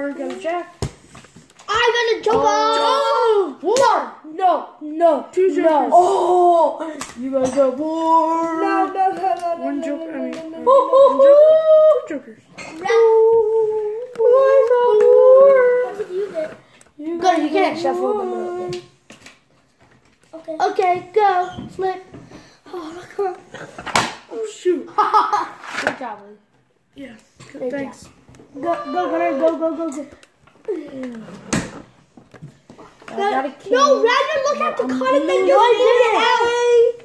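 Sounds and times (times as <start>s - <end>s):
child wailing: 7.9s - 12.1s, 28.6s - 29.8s
child's voice sliding down: 15.3s - 16.6s.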